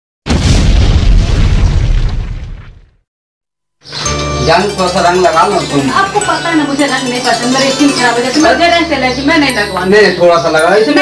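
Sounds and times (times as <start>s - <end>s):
explosion boom: 0.3s - 3.0s.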